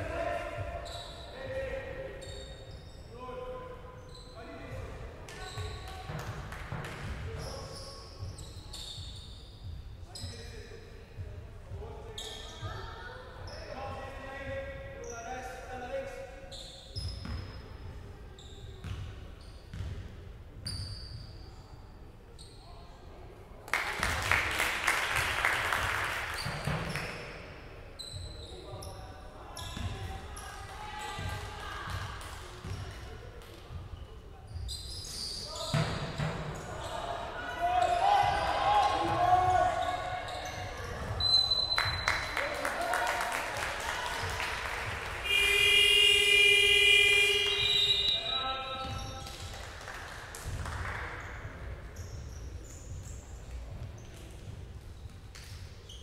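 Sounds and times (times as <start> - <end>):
sneakers squeaking: 0.1 - 10.7, 12.0 - 14.0, 16.4 - 23.0, 26.3 - 31.4, 32.6 - 33.2, 33.8 - 42.4, 44.2 - 49.5, 50.4 - 56.0
crowd cheering and clapping: 23.7 - 26.4, 41.8 - 45.6
players calling out: 45.2 - 49.1.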